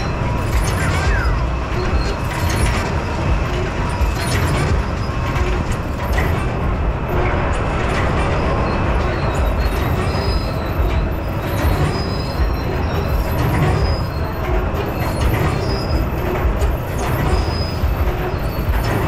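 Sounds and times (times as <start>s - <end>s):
carousel rumble: 0.0s - 19.0s.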